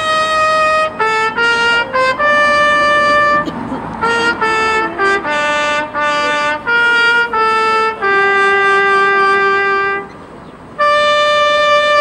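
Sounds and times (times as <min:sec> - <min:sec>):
trumpet playing slow melody: 0:00.0 - 0:10.1, 0:10.8 - 0:12.0.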